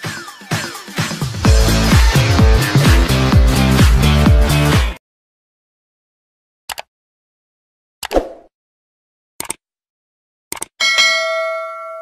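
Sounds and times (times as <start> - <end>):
notification bell ding: 10.8 - 12.0.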